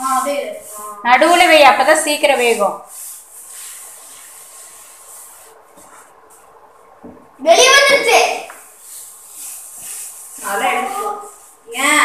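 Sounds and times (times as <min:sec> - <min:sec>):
wooden spatula stirring: 0:00.0 - 0:06.7, 0:08.1 - 0:11.8.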